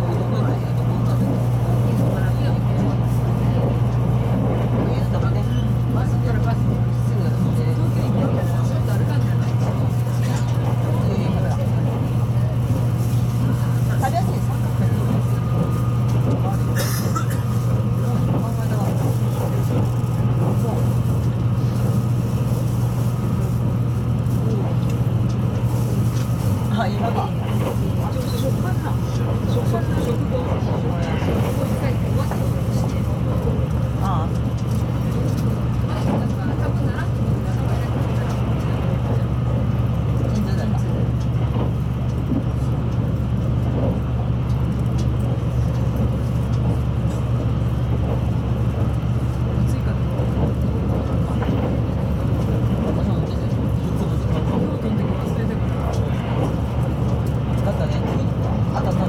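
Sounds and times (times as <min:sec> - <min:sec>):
train running rumble: 0:00.0 - 0:59.0.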